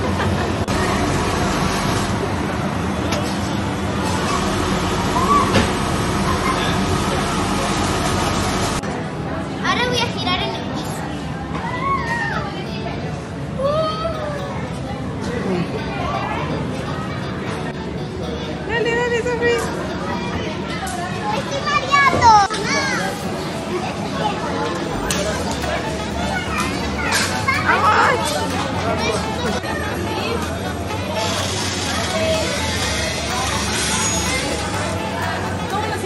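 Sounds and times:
children squealing and calling: 11.6s - 12.7s.

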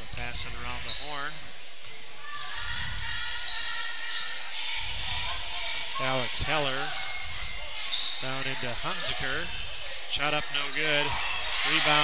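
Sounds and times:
basketball play on the court: 0.0s - 12.0s
crowd murmur: 1.7s - 12.0s.

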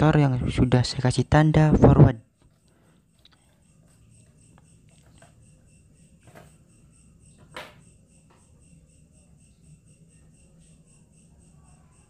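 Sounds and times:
faint pulsing high tone: 2.4s - 12.0s.

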